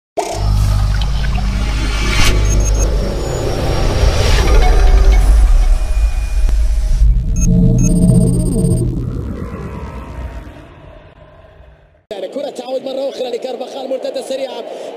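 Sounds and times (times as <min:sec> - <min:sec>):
heavy low rumble: 0:00.4 - 0:12.0
sweeping whooshes: 0:00.4 - 0:12.0
high ringing tones: 0:02.2 - 0:09.2.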